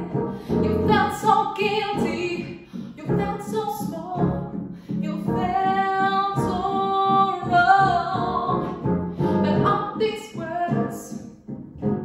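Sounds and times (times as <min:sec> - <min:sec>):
women singing pop ballad: 0:00.0 - 0:11.2
piano accompaniment: 0:00.0 - 0:12.0.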